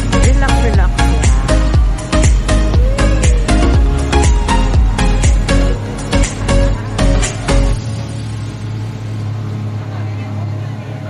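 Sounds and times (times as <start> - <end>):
boat engines droning: 0.0 - 11.0
water rushing along hull: 1.8 - 11.0.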